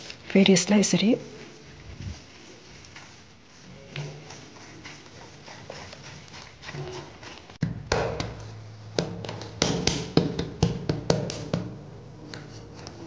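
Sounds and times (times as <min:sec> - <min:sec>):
hands working dough in bowl: 0:00.0 - 0:13.0
hands slapping dough on countertop: 0:07.6 - 0:12.9.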